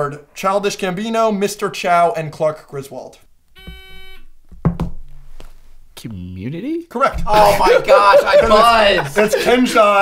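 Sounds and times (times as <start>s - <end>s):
quiz buzzer electronic tone: 3.6s - 4.4s
sharp thump: 4.5s - 5.3s.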